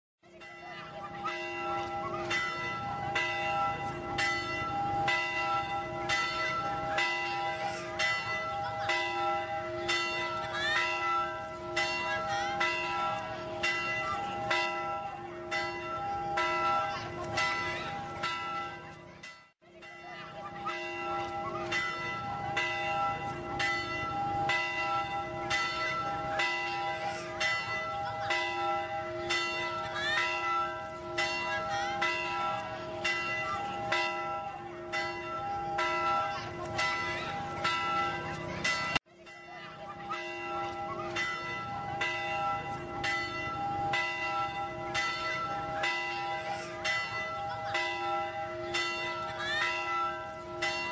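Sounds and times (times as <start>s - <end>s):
church bells ringing: 0.2s - 50.9s.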